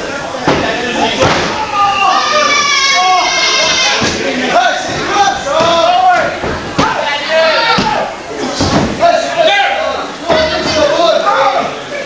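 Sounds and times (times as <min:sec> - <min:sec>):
voices shouting in hall: 0:01.0 - 0:12.0.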